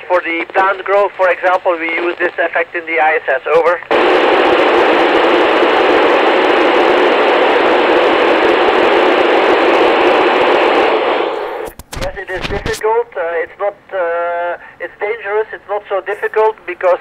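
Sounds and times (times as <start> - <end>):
radio static hiss: 0.0 - 17.0
sharp radio clicks: 11.6 - 12.9, 16.1 - 17.0.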